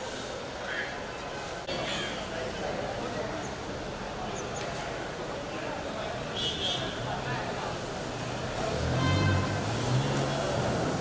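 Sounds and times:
traffic passing: 0:00.0 - 0:11.0
vehicle engine: 0:07.8 - 0:11.0.

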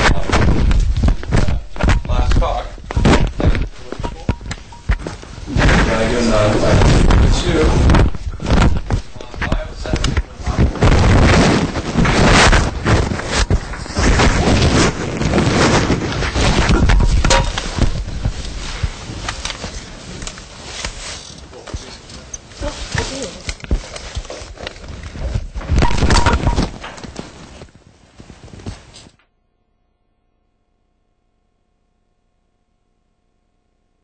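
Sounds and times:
equipment handling knocks and thumps: 0:00.0 - 0:05.9, 0:07.9 - 0:11.4, 0:16.4 - 0:19.9, 0:25.7 - 0:27.4
indistinct voices: 0:00.0 - 0:10.8.

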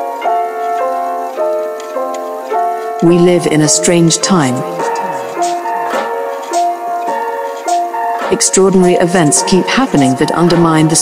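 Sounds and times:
ticking pitched notes music: 0:00.0 - 0:11.0.

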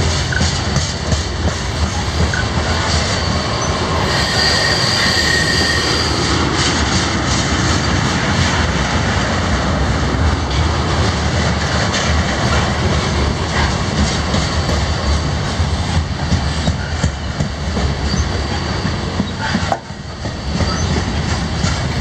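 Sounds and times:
freight cars rumbling and rattling: 0:00.0 - 0:22.0
high wheel squeal: 0:01.8 - 0:06.5, 0:18.0 - 0:21.0.

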